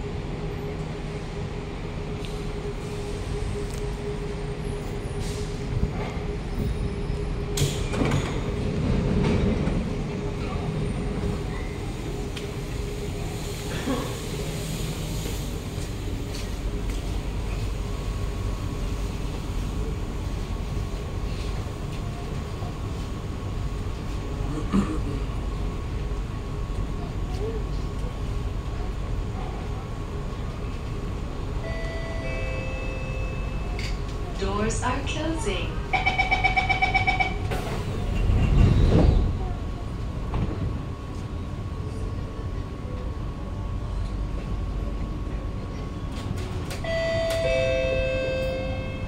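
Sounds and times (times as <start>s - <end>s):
train low rumble: 0.0s - 49.0s.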